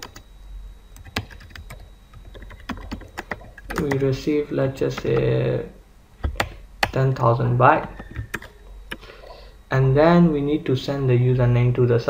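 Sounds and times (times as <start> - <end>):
computer keyboard typing: 0.0 - 0.2, 1.0 - 4.2, 4.8 - 5.4, 6.2 - 7.0, 7.8 - 9.1.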